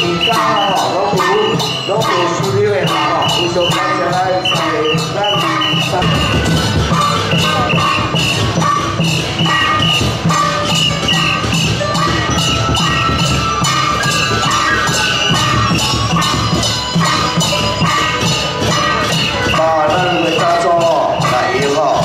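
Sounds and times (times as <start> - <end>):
drums and cymbals beat: 0.0 - 22.0
melody line: 0.0 - 22.0.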